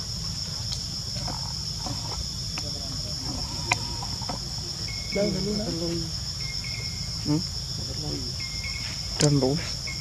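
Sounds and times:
insects buzzing: 0.0 - 10.0.

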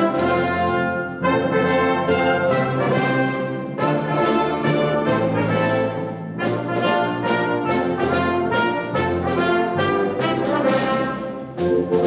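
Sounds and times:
wind band playing: 0.0 - 12.0.

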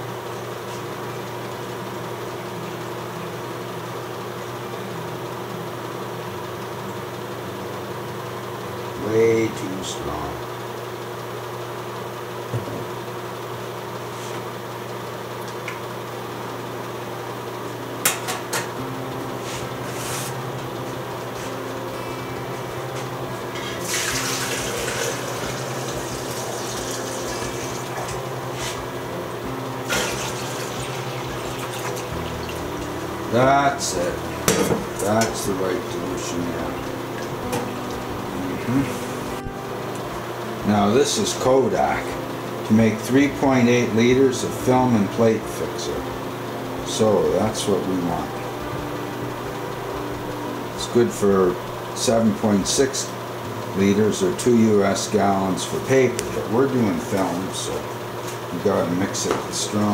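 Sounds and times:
steady low hum: 0.0 - 59.9
liquid pouring into metal tank: 23.5 - 28.2, 29.8 - 32.9.

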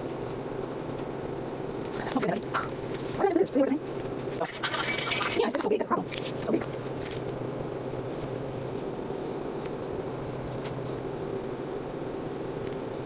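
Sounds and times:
low mechanical hum: 0.0 - 13.0.

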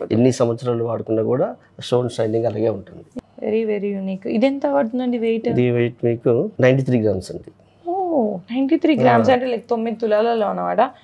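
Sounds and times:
people talking: 0.0 - 10.9.

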